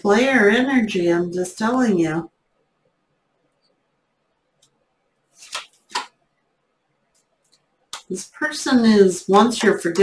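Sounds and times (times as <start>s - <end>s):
cards swishing: 5.4s - 6.1s.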